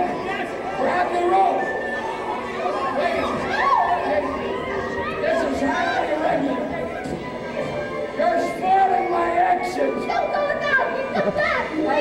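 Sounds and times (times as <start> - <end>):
shouted call: 0.0 - 6.2.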